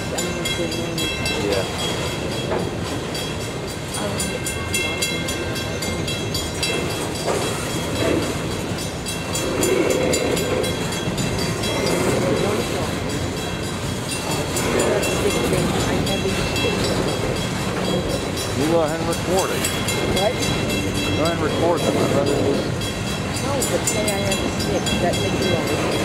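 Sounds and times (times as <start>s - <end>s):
train wheels rumbling on rails: 0.0s - 26.0s
wheels clicking over rail joints: 0.0s - 26.0s.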